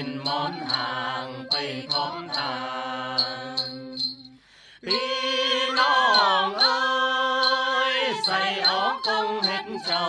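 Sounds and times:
voices singing folk song: 0.0s - 10.0s.

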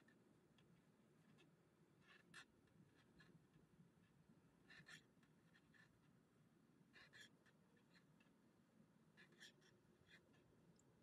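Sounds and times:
crochet hook pulling yarn: 9.2s - 10.5s.

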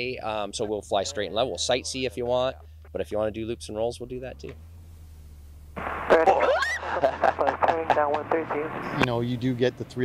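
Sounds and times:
cockpit noise: 5.7s - 10.0s
woman shrieking and laughing: 6.2s - 7.4s.

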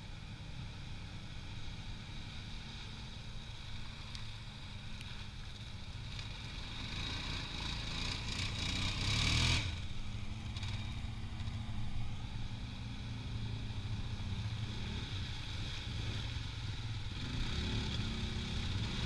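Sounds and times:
quad engines running: 5.0s - 19.0s.

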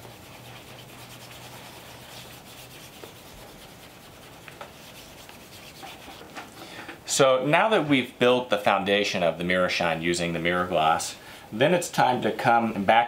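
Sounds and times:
cloth rubbing polish into shoe: 0.0s - 6.4s.

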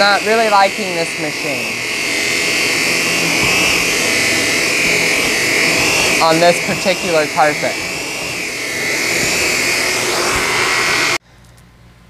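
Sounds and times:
vacuum cleaner whine: 0.0s - 11.2s.

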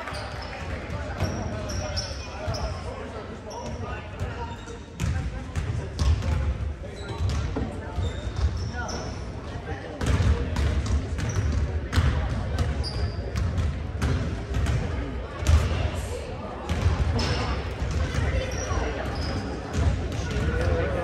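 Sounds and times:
chatter of people in a hall: 0.0s - 21.0s
sneaker squeaks: 0.1s - 2.9s, 3.5s - 5.1s, 6.9s - 9.3s, 11.2s - 11.6s, 12.6s - 13.5s, 17.2s - 20.7s
basketballs bouncing on wooden floor: 10.0s - 15.6s.

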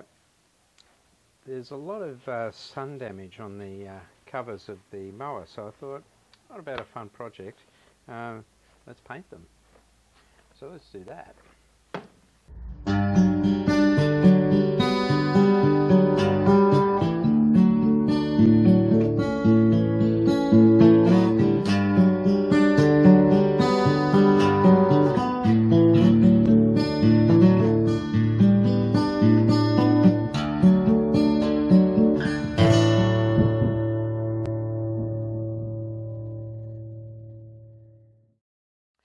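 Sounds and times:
acoustic guitar music: 12.5s - 38.2s.

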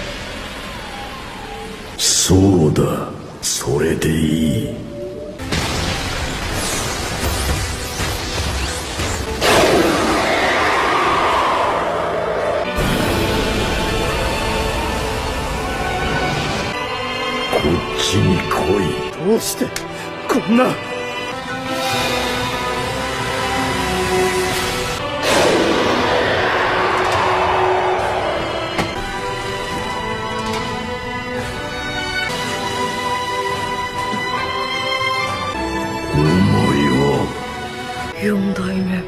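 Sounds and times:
background music: 0.0s - 39.0s
monster roaring: 9.4s - 13.5s.

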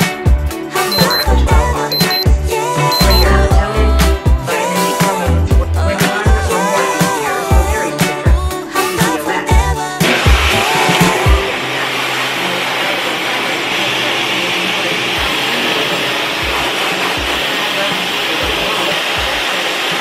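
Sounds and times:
background music: 0.0s - 14.2s
hair dryer blowing air: 10.0s - 20.0s.

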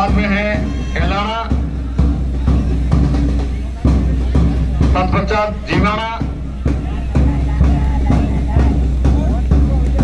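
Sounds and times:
marching band music: 0.0s - 10.0s
steady drum beat: 0.0s - 10.0s.

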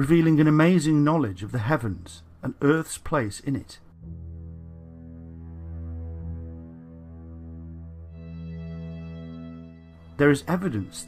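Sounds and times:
ambient drone music: 4.0s - 11.0s.

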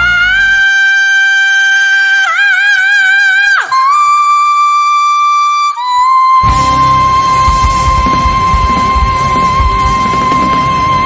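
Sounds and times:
man singing high held notes: 0.0s - 11.0s
band low end: 6.4s - 11.0s.

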